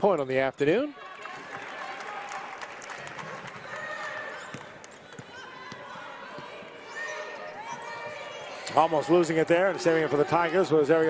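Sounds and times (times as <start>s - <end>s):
murmur of crowd: 0.8s - 11.0s.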